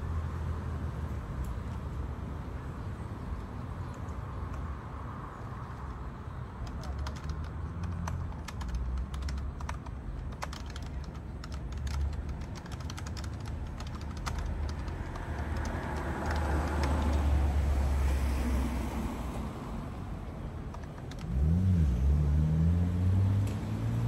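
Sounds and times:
low outdoor rumble: 0:00.0 - 0:24.0
keyboard typing clicks: 0:06.6 - 0:17.3, 0:20.7 - 0:21.3
car passing: 0:13.0 - 0:24.0.

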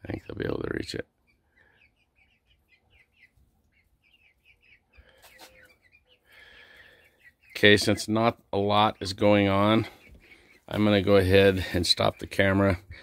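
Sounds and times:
chicks peeping: 0:00.0 - 0:13.0.

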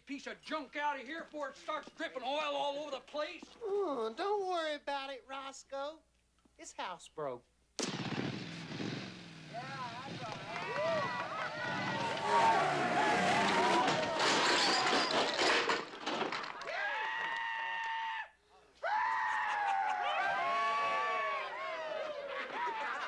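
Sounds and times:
people whooping and yelling: 0:09.6 - 0:15.1, 0:16.6 - 0:23.0
crash of smashing wood and glass: 0:11.6 - 0:16.7.

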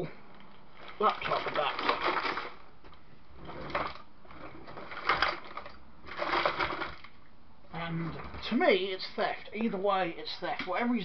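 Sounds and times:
small hard objects rattling: 0:00.8 - 0:02.6, 0:03.6 - 0:07.2.

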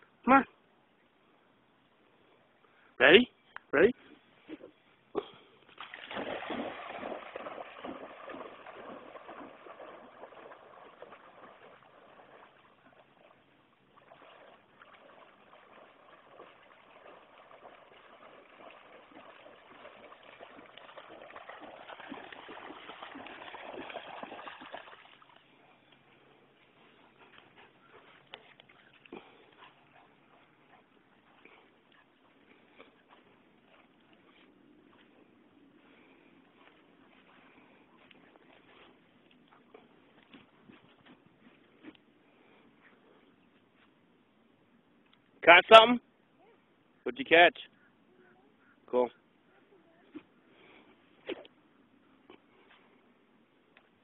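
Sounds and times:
dog splashing through water: 0:05.7 - 0:26.0.

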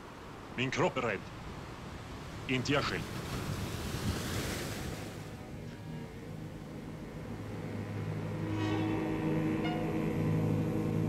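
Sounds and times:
surf washing on stony shore: 0:00.0 - 0:06.3
held orchestral chord: 0:05.7 - 0:11.0.

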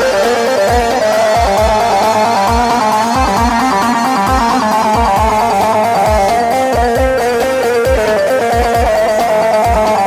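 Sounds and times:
electronic keyboard fast melody: 0:00.0 - 0:10.0
steady kick drum beat: 0:00.0 - 0:10.0.

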